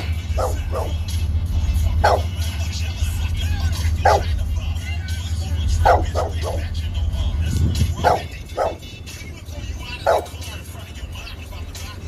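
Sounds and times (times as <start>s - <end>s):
background music: 0.0s - 12.0s
dog barking: 0.3s - 1.0s, 2.0s - 2.4s, 4.0s - 4.4s, 5.7s - 6.7s, 7.9s - 8.9s, 10.0s - 10.4s.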